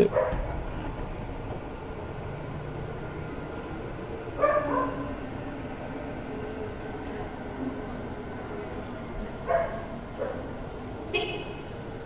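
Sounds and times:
background hiss and hum: 0:00.0 - 0:12.0.

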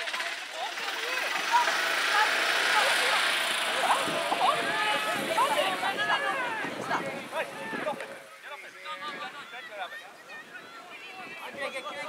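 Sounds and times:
distant calls and shouts: 0:00.0 - 0:12.0.

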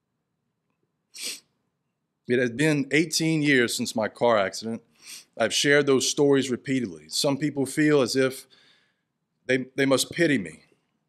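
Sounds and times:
sharp intake of breath: 0:01.2 - 0:01.5, 0:04.9 - 0:05.4, 0:08.5 - 0:09.1.

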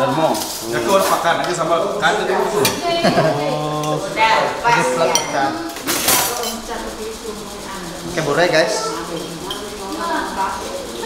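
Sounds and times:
metal utensils clinking on tray: 0:05.0 - 0:06.8, 0:09.0 - 0:10.5.

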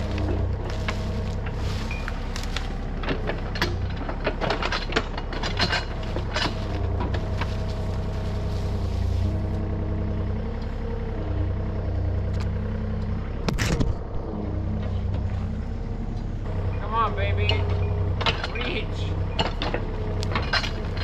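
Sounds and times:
excavator diesel engine running: 0:00.0 - 0:21.0.

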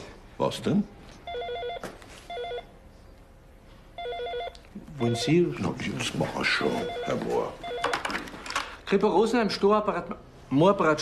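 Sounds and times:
desk telephone ringing: 0:01.3 - 0:02.7, 0:04.0 - 0:05.7, 0:06.5 - 0:08.3.

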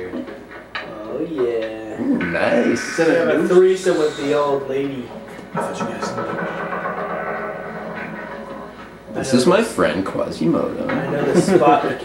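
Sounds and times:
horror film soundtrack: 0:02.0 - 0:09.2
sustained ringing tone: 0:02.0 - 0:09.2.

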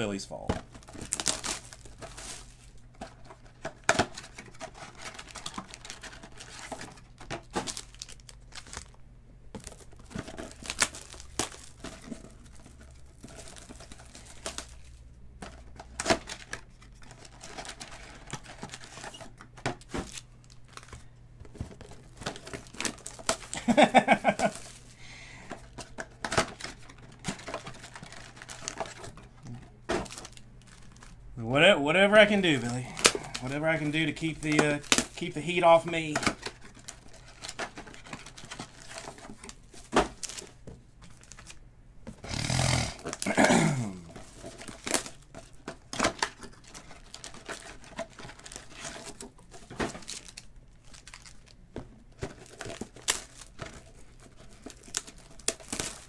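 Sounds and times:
wrappers crinkling and tearing: 0:00.6 - 0:09.0, 0:09.6 - 0:41.6, 0:42.3 - 0:56.0
cards handled and set down: 0:32.4 - 0:42.2
person humming: 0:43.7 - 0:44.1.

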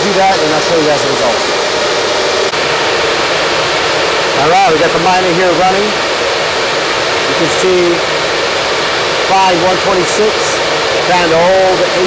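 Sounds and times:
cooling fans rushing: 0:00.0 - 0:12.0.

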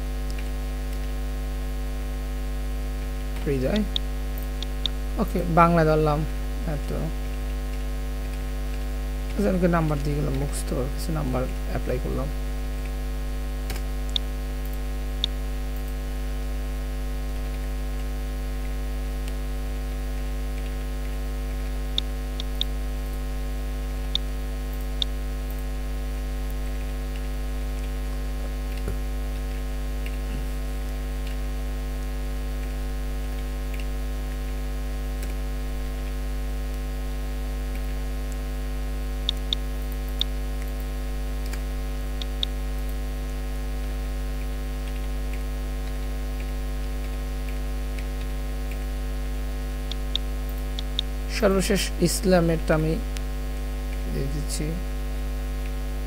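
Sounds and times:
electrical mains hum: 0:00.0 - 0:56.0.

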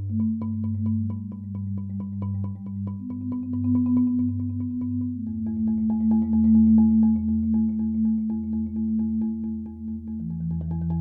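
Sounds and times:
marimba roll: 0:00.0 - 0:11.0.

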